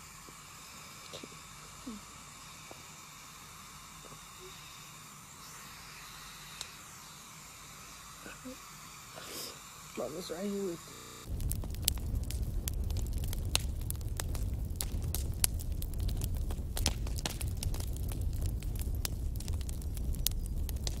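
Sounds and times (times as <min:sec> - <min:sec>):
crackling with sharp pops: 0:00.0 - 0:07.4, 0:11.0 - 0:21.0
steady low rumble: 0:11.2 - 0:21.0.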